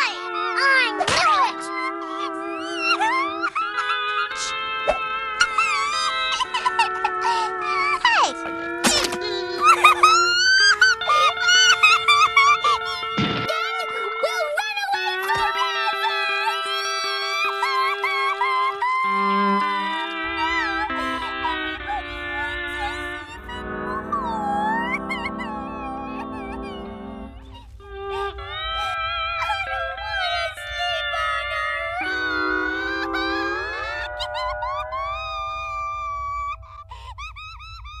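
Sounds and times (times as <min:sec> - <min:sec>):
music with held notes: 0:00.0 - 0:37.1
cartoon girl crying: 0:00.0 - 0:38.0
notes sliding upward: 0:19.0 - 0:37.2.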